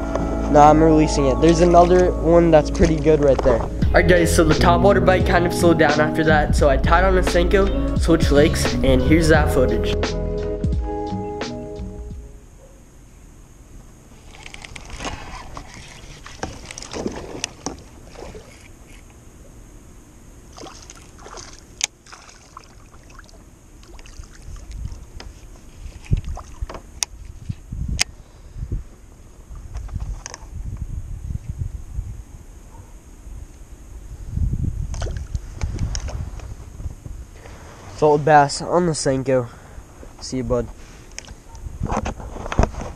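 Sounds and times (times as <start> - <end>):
water and handling noise: 14.1 - 19.6, 20.5 - 27.6
low thumping and splashing: 16.1 - 18.5, 20.5 - 25.2.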